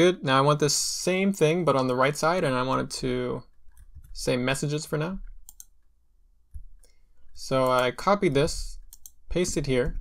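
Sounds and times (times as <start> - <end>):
computer clicks: 5.2 - 5.9, 6.5 - 10.0.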